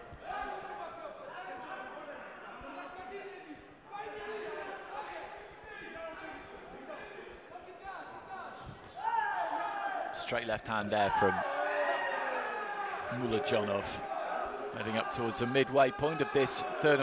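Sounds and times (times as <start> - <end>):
voices shouting in a hall: 0.0 - 17.0.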